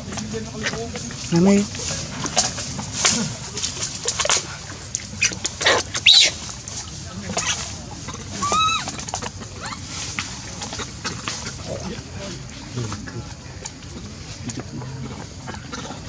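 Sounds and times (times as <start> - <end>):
water dripping and clicks: 0.0 - 9.5, 10.2 - 15.8
monkey squealing: 5.2 - 6.4, 8.3 - 10.0.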